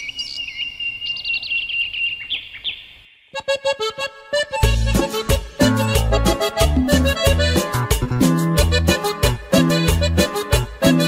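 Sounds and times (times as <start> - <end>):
birds chirping and trilling: 0.0 - 3.5
accordion: 3.4 - 11.0
percussion: 4.6 - 11.0.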